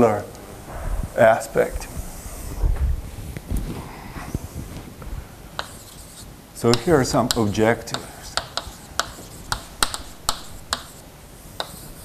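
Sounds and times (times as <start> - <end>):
chalk tapping on blackboard: 5.6 - 12.0.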